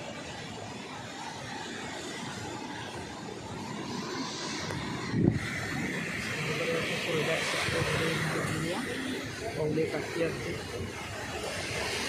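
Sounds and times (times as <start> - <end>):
waves washing up a sandy beach: 0.0 - 12.0.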